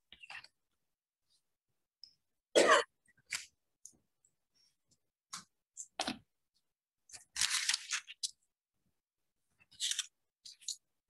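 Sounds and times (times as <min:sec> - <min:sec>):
person coughing: 0:02.5 - 0:02.9.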